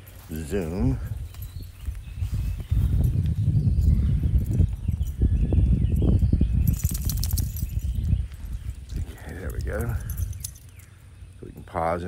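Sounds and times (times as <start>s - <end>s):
low rumbling on microphone: 0.0s - 10.8s
rattle of sharp clicks: 6.6s - 8.2s.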